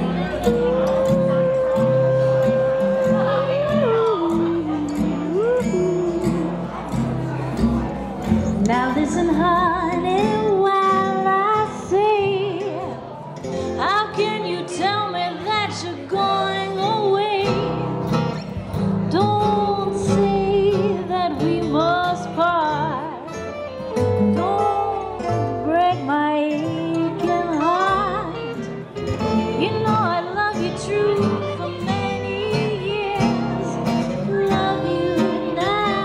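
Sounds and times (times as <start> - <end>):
strummed acoustic guitar: 0.0 - 36.0.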